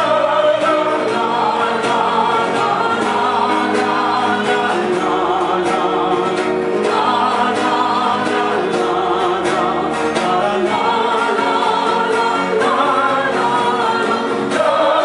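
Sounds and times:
acoustic guitar: 0.0s - 15.0s
woman and man singing together: 0.0s - 15.0s.

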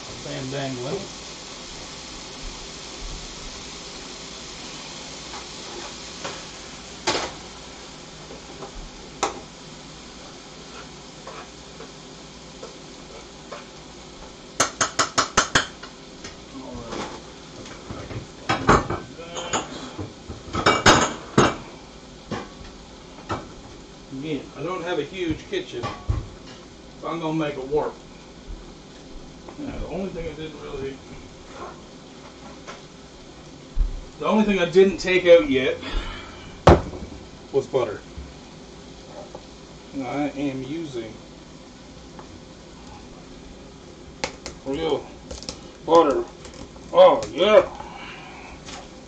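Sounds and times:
chicken sizzling in a frying pan: 0.0s - 49.0s.

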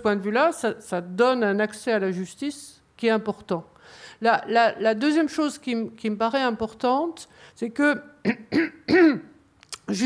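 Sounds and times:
woman clearing her throat: 8.2s - 10.0s.

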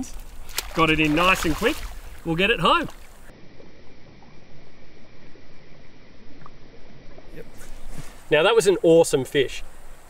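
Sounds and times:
faint small water splashes: 0.0s - 4.4s
shallow river water running: 0.0s - 10.0s.

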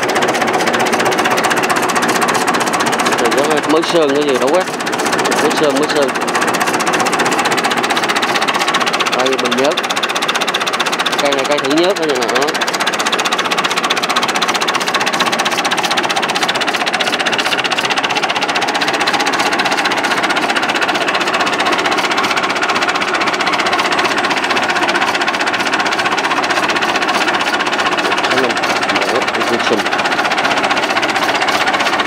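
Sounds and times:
tractor engine idling: 0.0s - 32.0s.

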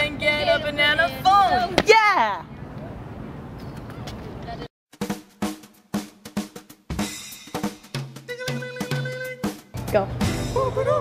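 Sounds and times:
drum beat with snare hits: 4.9s - 10.8s.

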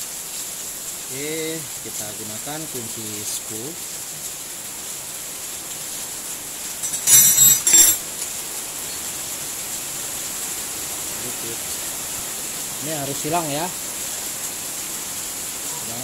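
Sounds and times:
steady hiss: 0.0s - 16.0s
metal hand tools clinking: 6.8s - 8.0s.

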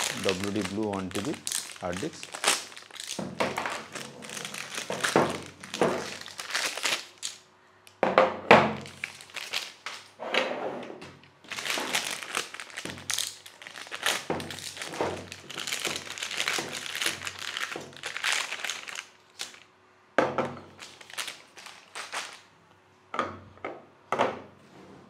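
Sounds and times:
plastic bags crinkling: 0.0s - 7.5s, 8.7s - 10.2s, 11.2s - 19.7s, 20.6s - 22.6s.

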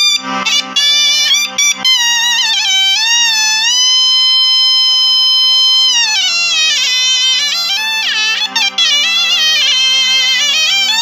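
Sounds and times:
double-reed pipe melody: 0.0s - 11.0s.

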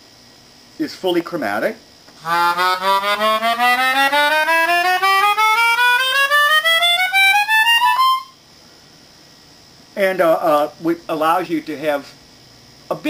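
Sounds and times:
melodica ascending scale: 2.2s - 8.4s.

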